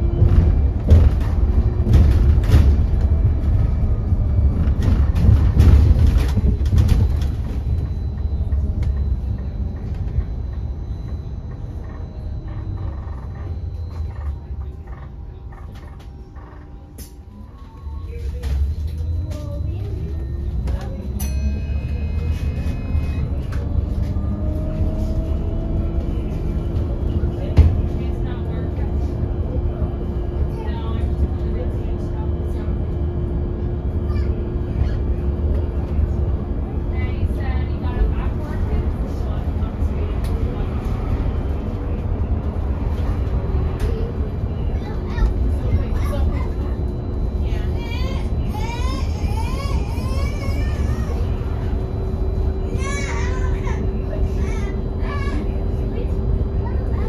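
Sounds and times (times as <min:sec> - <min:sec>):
bus road and body rumble: 0:00.0 - 0:57.0.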